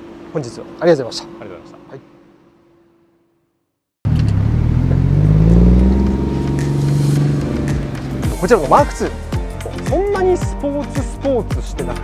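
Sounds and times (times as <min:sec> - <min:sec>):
car engine accelerating: 0:04.1 - 0:09.6.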